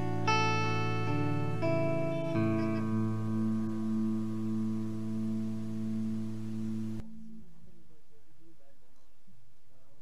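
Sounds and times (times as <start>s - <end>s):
guitar chord ringing out: 0.0s - 8.0s.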